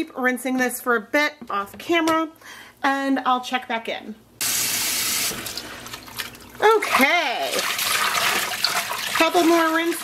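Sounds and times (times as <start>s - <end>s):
tap water running into sink: 7.5s - 10.0s.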